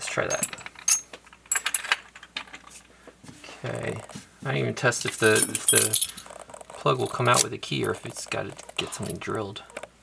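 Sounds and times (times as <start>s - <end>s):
small metal parts clinking: 0.0s - 2.8s, 5.0s - 9.9s.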